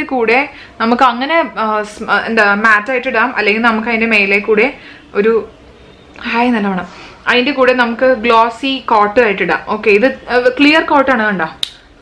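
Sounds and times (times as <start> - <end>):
woman talking: 0.0 - 5.5, 6.2 - 11.7.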